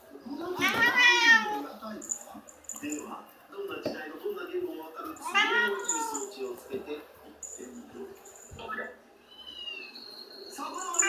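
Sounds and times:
cat meowing: 0:00.5 - 0:01.6, 0:05.2 - 0:06.3, 0:10.6 - 0:11.0.

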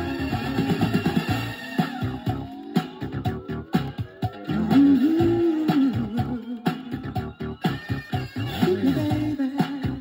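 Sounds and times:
funk record playing: 0:00.0 - 0:10.0.

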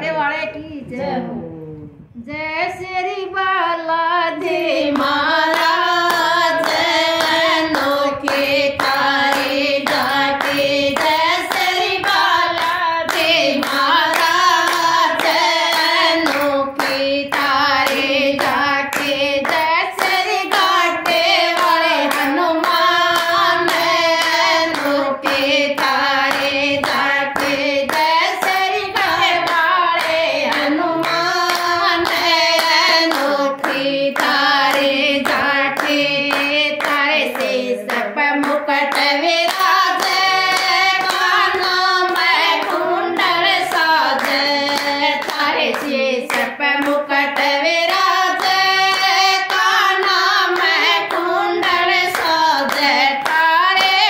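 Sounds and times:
women singing together: 0:02.2 - 0:54.0
handclaps keeping time: 0:04.4 - 0:54.0.

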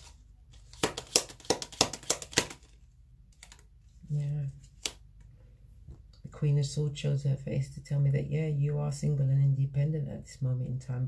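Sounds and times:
cards being shuffled: 0:00.0 - 0:05.1.

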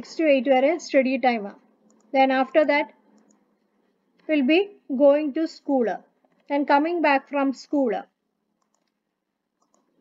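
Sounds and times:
faint computer clicks: 0:08.6 - 0:09.0, 0:09.6 - 0:10.0.

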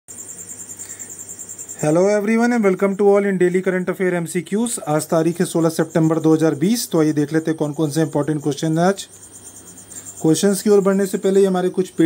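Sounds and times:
man's voice: 0:10.2 - 0:12.0.

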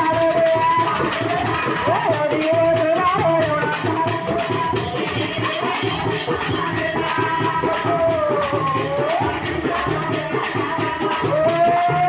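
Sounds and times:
frame drums beaten: 0:00.0 - 0:12.0.

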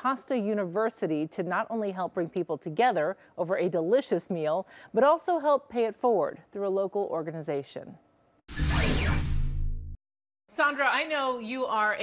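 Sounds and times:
whoosh sound effect: 0:08.5 - 0:10.0.

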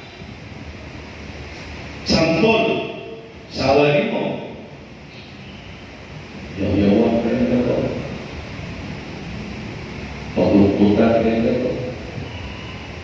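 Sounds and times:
low background noise: 0:00.0 - 0:13.0
man speaking through loudspeakers: 0:02.0 - 0:04.7, 0:06.5 - 0:08.2, 0:10.3 - 0:12.1.

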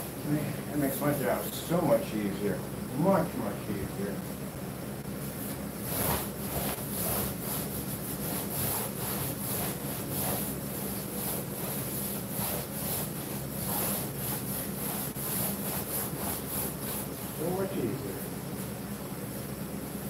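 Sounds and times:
paint roller rolling on screen: 0:05.4 - 0:17.6.

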